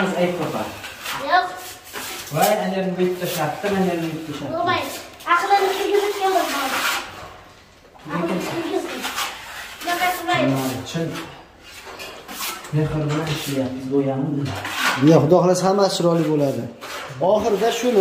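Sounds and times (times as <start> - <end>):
people talking: 9.8 - 11.2.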